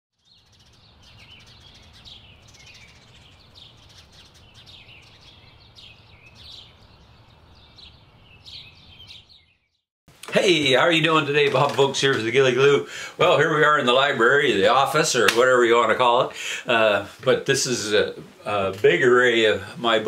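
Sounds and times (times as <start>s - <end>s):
small songbirds chirping: 0.1s - 9.9s.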